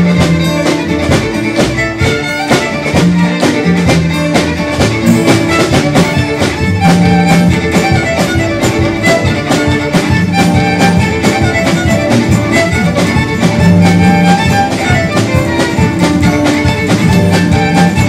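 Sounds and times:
acoustic guitar: 0:00.0 - 0:18.0
fiddle melody: 0:00.0 - 0:18.0
snare drum beat: 0:00.0 - 0:18.0
upright bass: 0:00.0 - 0:18.0.

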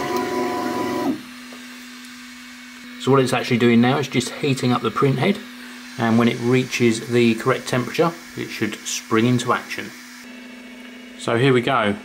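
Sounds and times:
printer fan hiss: 0:00.0 - 0:12.0.

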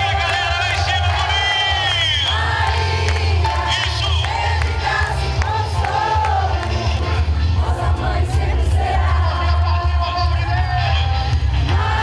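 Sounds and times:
crowd singing along: 0:00.0 - 0:12.0.

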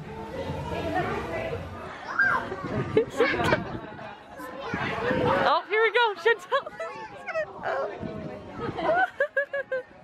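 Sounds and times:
crowd voices and children chattering: 0:00.0 - 0:10.0.

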